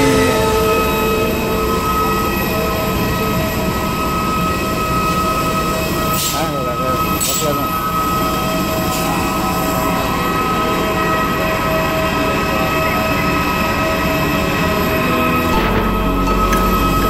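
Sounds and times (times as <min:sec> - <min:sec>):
aircraft turbine whine: 0:00.0 - 0:17.0
deep rumble: 0:14.7 - 0:17.0.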